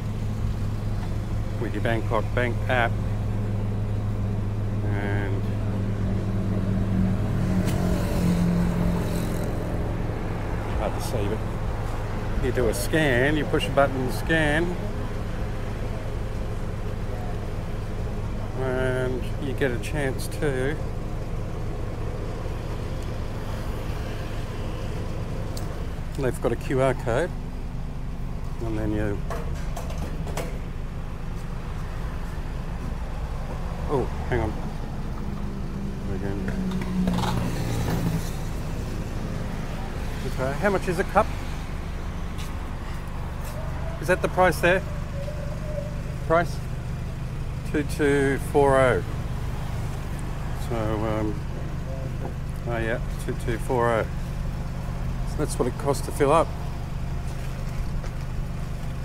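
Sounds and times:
road traffic rumble: 0.0s - 59.0s
vehicle engine hum: 0.0s - 59.0s.

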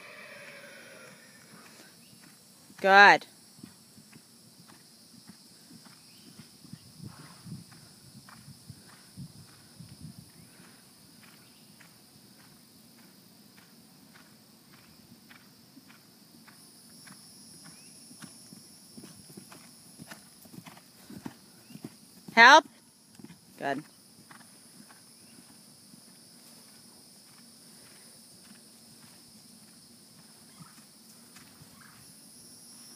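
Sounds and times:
horse hoofbeats on grass: 1.4s - 32.2s.

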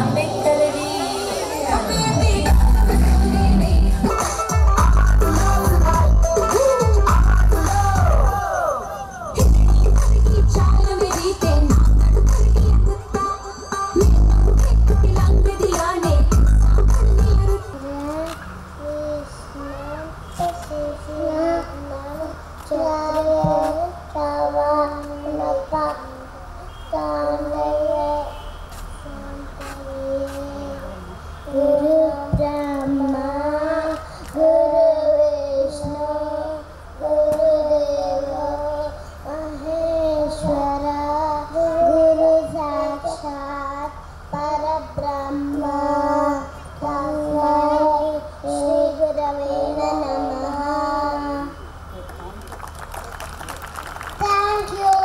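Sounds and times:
girl chanting into a microphone: 14.0s - 51.6s, 54.2s - 55.0s.

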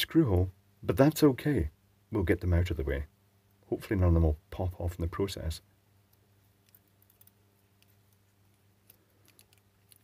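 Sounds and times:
faint steady hum: 0.0s - 10.0s
faint ticks of plastic handling: 6.1s - 10.0s.

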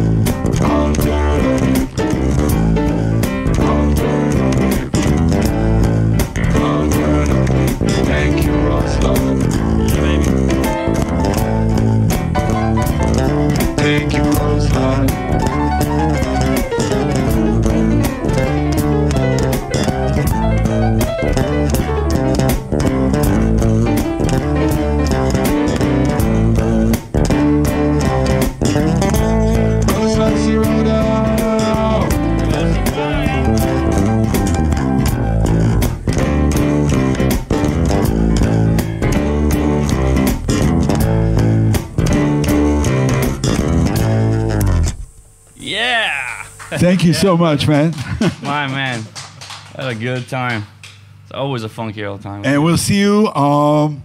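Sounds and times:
digital piano playing: 0.0s - 45.8s
electric bass guitar playing: 0.0s - 47.9s.

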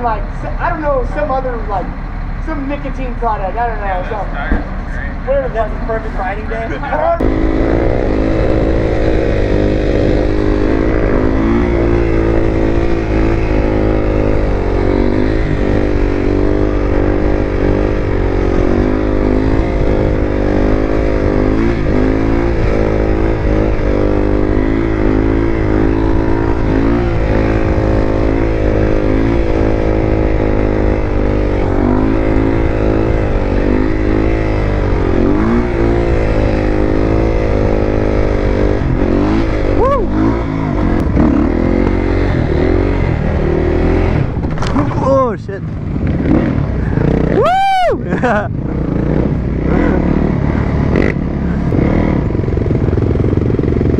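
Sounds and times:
motorcycle engine revving: 0.0s - 53.9s.

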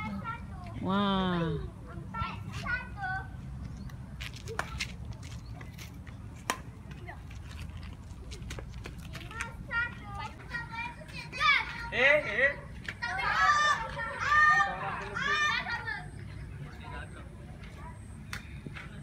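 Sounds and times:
children calling and chattering: 0.0s - 19.0s
racquets hitting shuttlecock: 6.4s - 6.7s.

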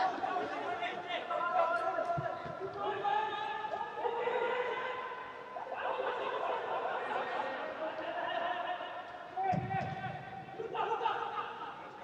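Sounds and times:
distant shouts in echoing hall: 0.0s - 12.0s.

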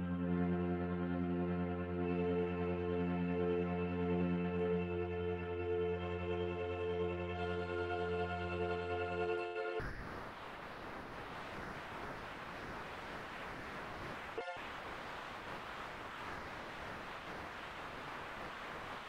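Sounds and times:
steady hiss: 9.8s - 19.0s.

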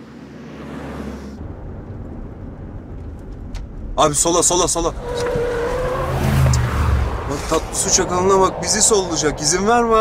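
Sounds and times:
vehicle driving on road: 0.0s - 10.0s.

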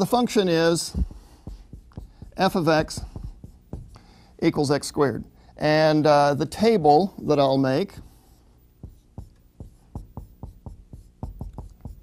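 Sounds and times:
pen writing taps and scratches: 8.8s - 12.0s.

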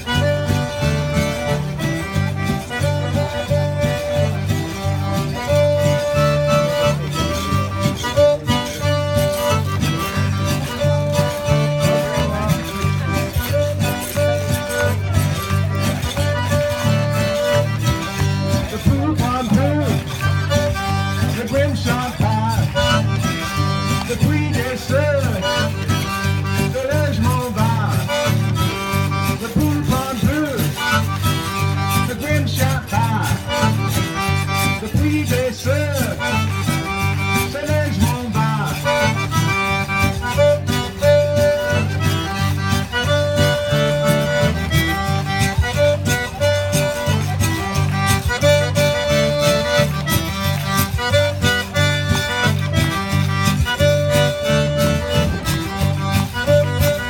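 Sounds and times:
live band playing dance music: 0.0s - 57.0s.

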